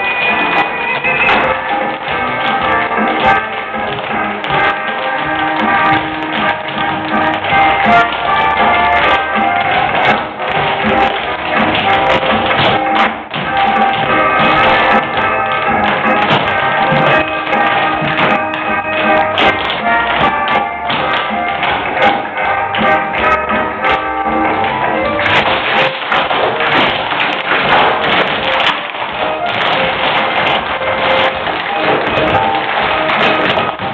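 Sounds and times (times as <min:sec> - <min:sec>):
show music: 0:00.0 - 0:33.9
tap shoes clicking on stage: 0:00.0 - 0:33.9.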